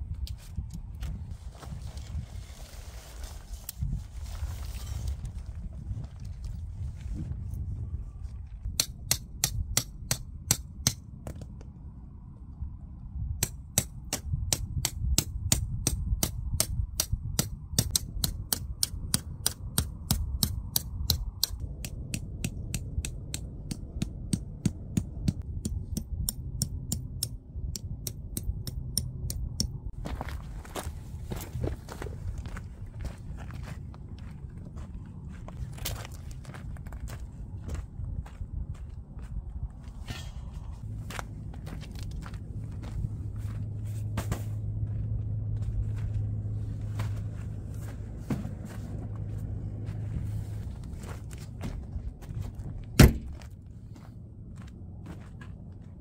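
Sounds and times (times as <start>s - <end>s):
low wind rumble on microphone: 0.0s - 56.0s
tent stakes tapped into stony ground: 8.7s - 11.7s, 13.4s - 29.8s
knocks and scuffs on gravel: 30.0s - 56.0s.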